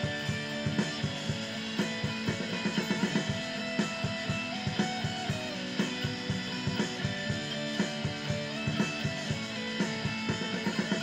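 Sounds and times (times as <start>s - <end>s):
electric guitar playing: 0.0s - 11.0s
steady drum beat: 0.0s - 11.0s.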